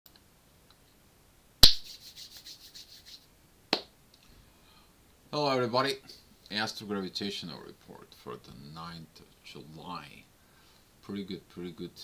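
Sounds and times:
scratchy rubbing strokes: 1.7 - 3.3.

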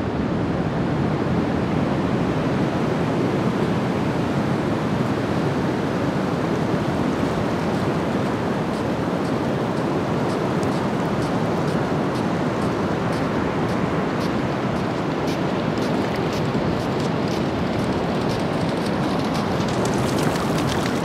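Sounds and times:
wind rumbling on microphone: 0.0 - 21.0
ocean surf: 1.4 - 21.0.

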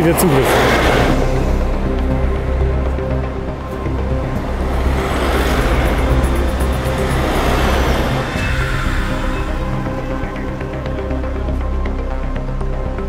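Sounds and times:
vehicle driving past: 0.0 - 11.5
background music: 0.0 - 13.0.

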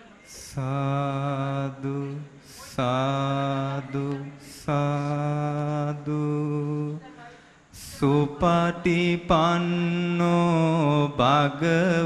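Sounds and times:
men chanting in a low drone: 0.3 - 12.0.

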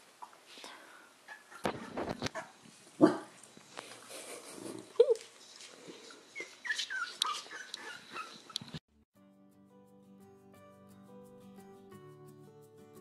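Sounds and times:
puppies whimpering and squeaking: 1.3 - 2.6, 6.1 - 8.8
puppy yelping: 1.3 - 3.2, 6.3 - 8.8.

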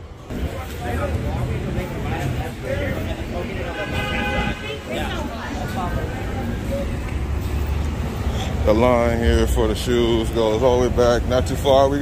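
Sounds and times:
faint voices of passers-by: 0.0 - 12.0
road traffic rumble: 0.0 - 12.0.

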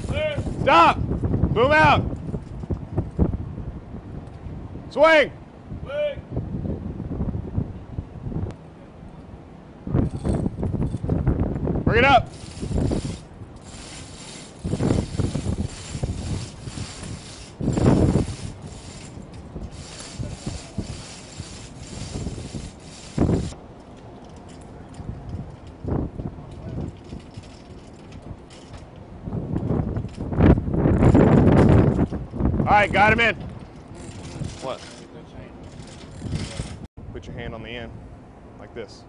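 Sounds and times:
chain running through hoist: 12.3 - 23.5, 26.5 - 28.8, 33.7 - 36.8
ratchet clicks and clanks: 12.3 - 25.9, 26.5 - 29.0, 32.8 - 36.9.

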